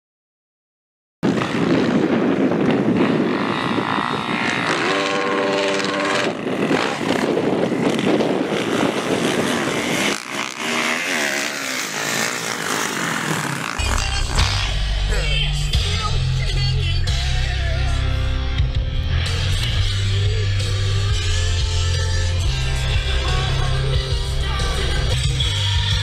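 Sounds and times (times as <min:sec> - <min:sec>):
dirt bike engines revving: 0:01.2 - 0:26.0.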